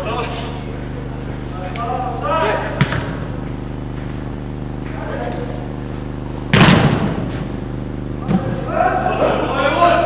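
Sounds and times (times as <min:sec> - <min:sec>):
low hum: 0:00.0 - 0:10.0
football being kicked: 0:02.8 - 0:03.3, 0:06.5 - 0:07.4.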